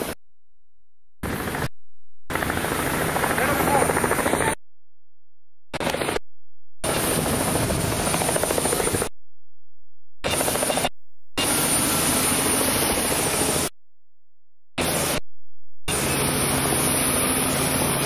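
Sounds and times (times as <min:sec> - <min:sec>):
aircraft engine roar: 0:01.2 - 0:04.6, 0:05.7 - 0:06.2, 0:06.8 - 0:09.1, 0:10.2 - 0:13.8, 0:14.8 - 0:15.2, 0:15.9 - 0:18.0.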